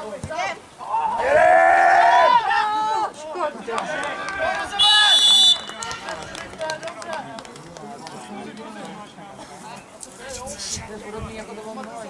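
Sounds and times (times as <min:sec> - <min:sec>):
players shouting: 0:00.4 - 0:06.9
referee whistle blast: 0:04.8 - 0:05.8.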